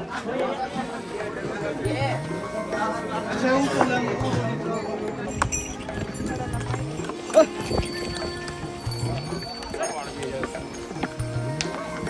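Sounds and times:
hooves clip-clopping: 3.7 - 12.0.

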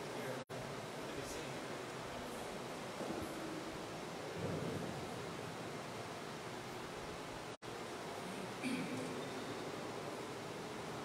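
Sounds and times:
room tone hiss: 0.0 - 11.0
faint low murmur: 8.0 - 11.0.

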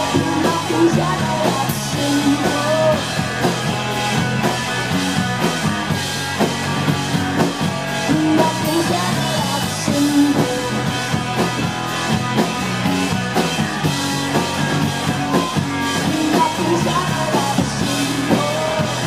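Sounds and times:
bass guitar: 0.0 - 19.0
drum kit beat: 0.0 - 19.0
electric guitars: 0.0 - 19.0.

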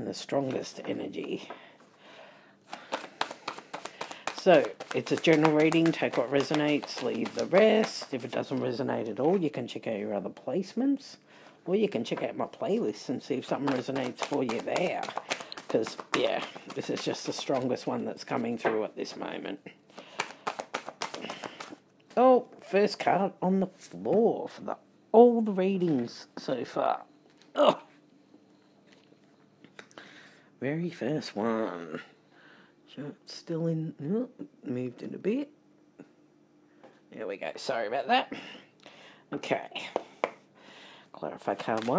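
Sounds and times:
cards being shuffled: 2.7 - 9.5, 12.1 - 19.2, 19.9 - 21.8, 41.4 - 41.9.

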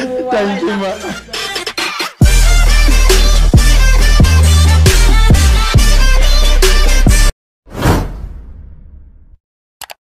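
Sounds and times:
whoosh sound effect: 7.7 - 8.9.

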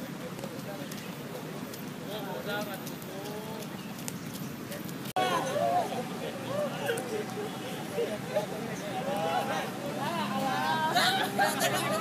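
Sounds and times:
people talking: 0.0 - 3.8, 4.7 - 12.0.

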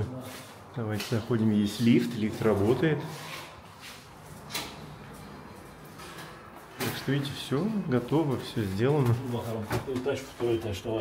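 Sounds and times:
lift doors sliding open: 3.1 - 7.4.

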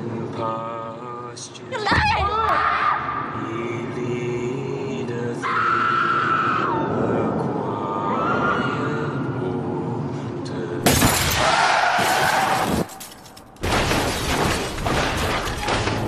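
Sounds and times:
people screaming: 5.4 - 6.8, 11.4 - 12.7
glass shattering: 10.8 - 16.0.

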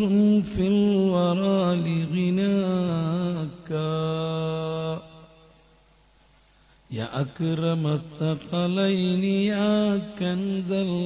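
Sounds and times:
man chanting: 0.0 - 5.5, 6.9 - 11.0.

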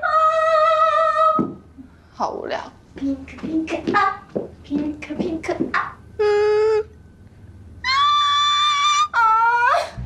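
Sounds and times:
woman singing wordless notes: 3.0 - 7.0.

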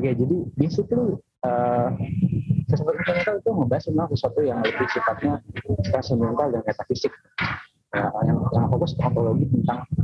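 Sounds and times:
person talking: 0.0 - 10.0
person's drawn-out hesitation sound: 4.5 - 6.6.

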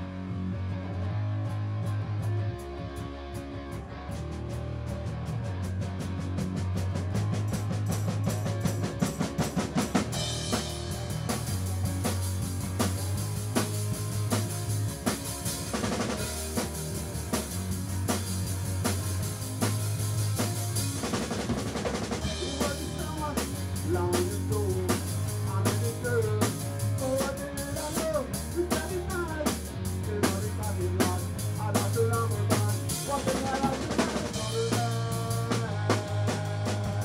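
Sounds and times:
drum kit playing rock: 0.0 - 37.0
electric bass guitar: 0.0 - 37.0.

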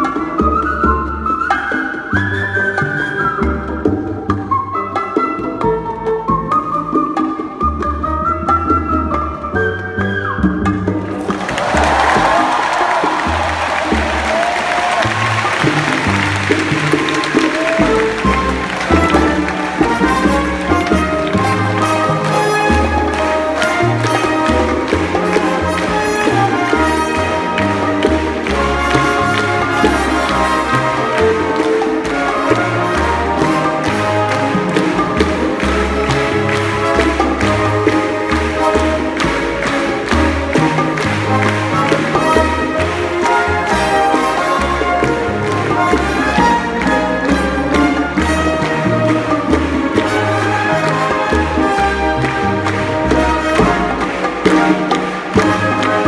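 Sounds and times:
latin jazz band playing: 0.0 - 56.0
audience applause: 11.1 - 56.0
hand claps: 11.2 - 56.0.

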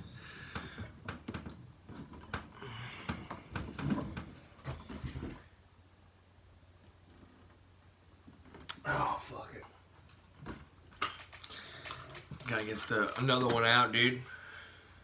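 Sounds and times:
heavy breathing: 0.0 - 1.1, 2.5 - 3.8, 14.3 - 15.0.

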